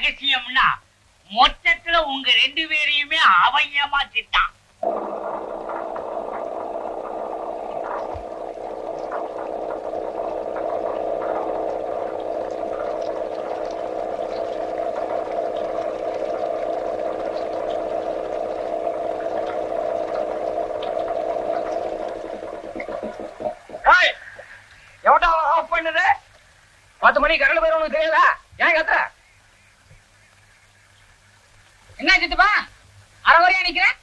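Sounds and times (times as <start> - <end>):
constant droning note: 4.8 - 23.9
water gushing from pipe: 4.8 - 25.1.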